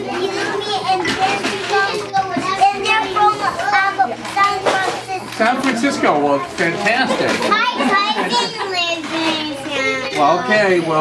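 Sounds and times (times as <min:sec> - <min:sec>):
children talking and calling out: 0:00.0 - 0:11.0.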